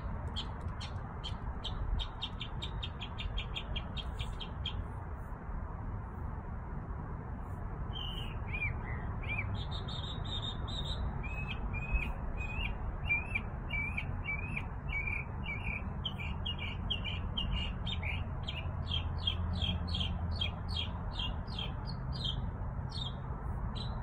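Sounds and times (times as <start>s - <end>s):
songbird chirping: 0.0s - 4.9s.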